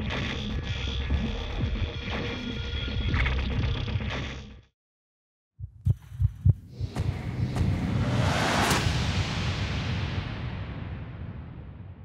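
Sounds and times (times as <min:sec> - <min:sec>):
whoosh: 0:06.7 - 0:12.0.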